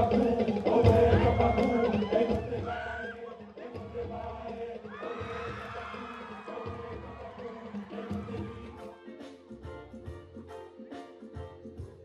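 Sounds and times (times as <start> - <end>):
group chanting: 0.0 - 9.4.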